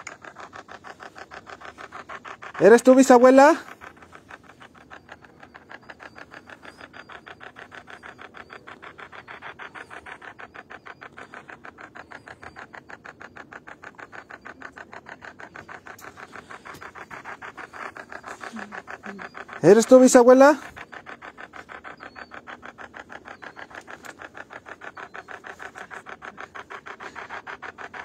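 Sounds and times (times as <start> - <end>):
fast electronic pulses: 0.0 - 28.0.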